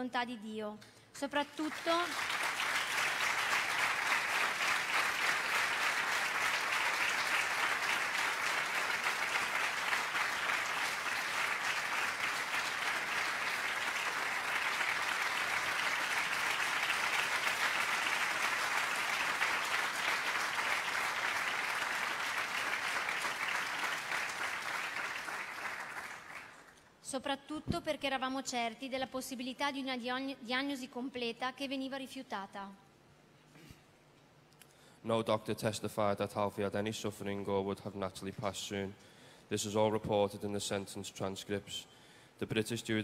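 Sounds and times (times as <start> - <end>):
large audience clapping: 1.5 - 26.8.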